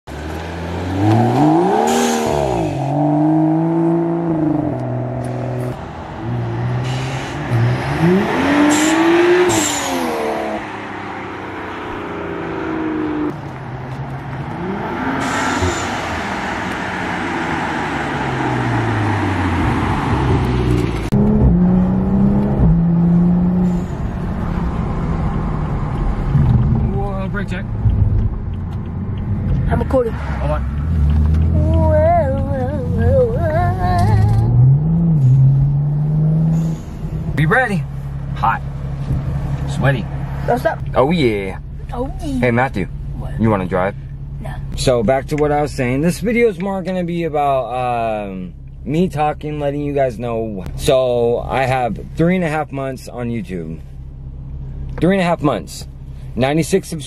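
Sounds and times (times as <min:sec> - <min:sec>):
car engine accelerating hard: 0:00.1 - 0:57.0.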